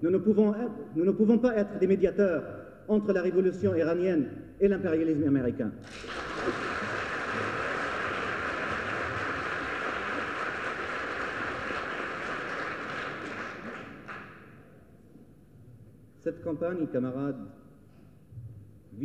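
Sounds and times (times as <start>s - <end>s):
audience applauding: 5.8s - 14.6s.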